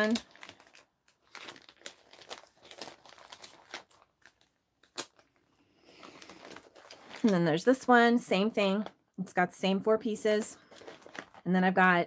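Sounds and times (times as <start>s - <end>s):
plastic sheets crinkling: 0.0s - 8.8s, 10.3s - 11.9s.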